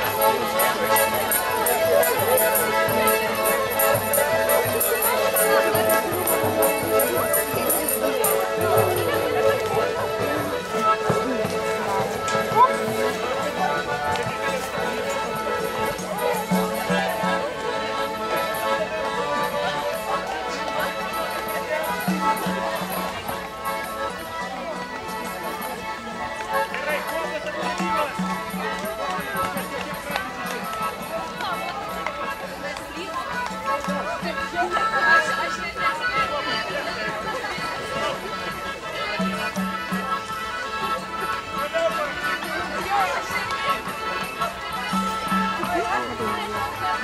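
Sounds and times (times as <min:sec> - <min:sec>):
folk dance music: 0:00.0 - 0:47.0
people chattering: 0:00.0 - 0:47.0
people's voices: 0:00.0 - 0:47.0.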